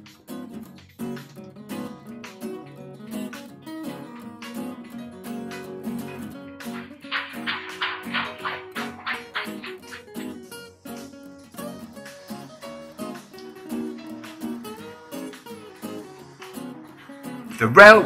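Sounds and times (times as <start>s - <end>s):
strummed guitar music with beat: 0.0s - 18.0s
bright rattling: 6.1s - 10.4s.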